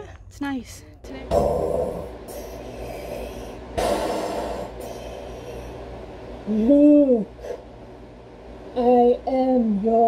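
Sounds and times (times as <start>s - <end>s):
breath through respirator: 2.3s - 5.9s.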